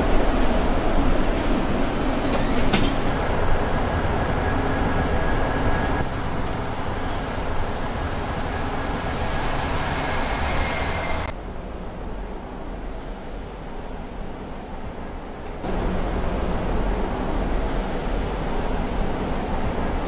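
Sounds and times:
faint steady whine: 0.0 - 20.0
road and tyre noise: 0.0 - 20.0.

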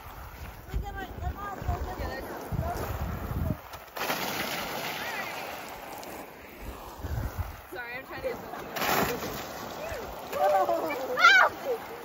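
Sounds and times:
children calling out: 10.0 - 12.0.

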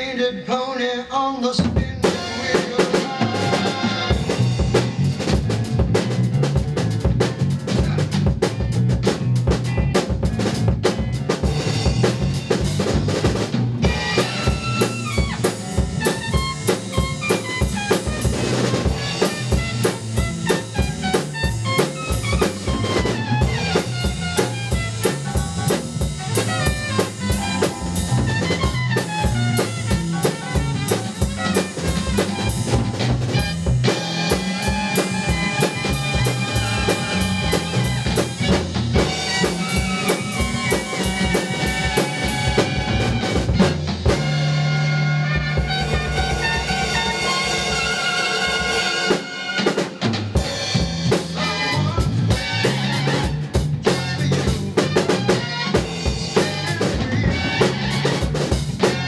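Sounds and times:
drum kit playing steady pattern: 1.4 - 59.0
lead instrument melodic solo: 13.8 - 50.8.

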